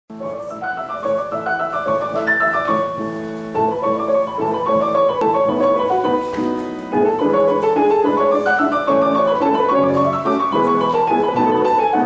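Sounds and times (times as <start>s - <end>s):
grand piano classical piece: 0.1s - 12.0s.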